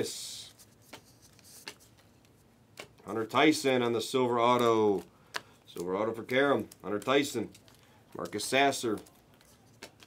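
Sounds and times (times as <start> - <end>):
trading cards flipped by hand: 0.5 - 3.1, 4.5 - 10.0
cards snapping: 0.8 - 2.1, 2.7 - 3.0, 4.5 - 10.0.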